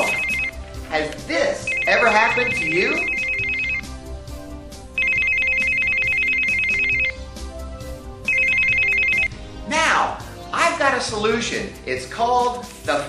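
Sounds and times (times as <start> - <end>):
mobile phone ringing: 0.0 - 0.6, 1.6 - 4.1, 4.9 - 7.3, 8.2 - 9.4
soft background music: 0.0 - 13.0.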